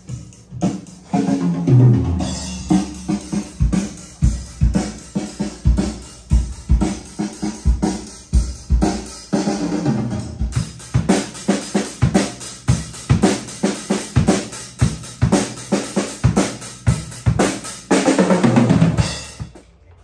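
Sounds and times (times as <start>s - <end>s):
drum kit rock beat: 0.0s - 19.7s.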